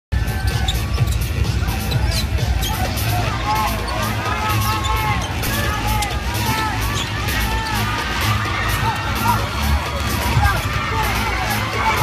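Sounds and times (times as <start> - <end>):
music playing: 0.1 - 12.0.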